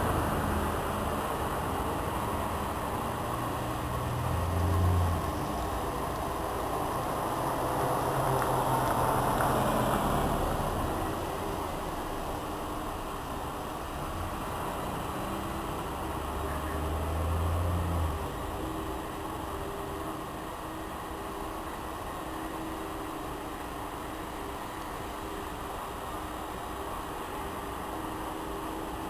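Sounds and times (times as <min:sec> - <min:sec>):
bus diesel engine rumbling: 0:00.0 - 0:29.0
bus engine idling: 0:00.0 - 0:29.0.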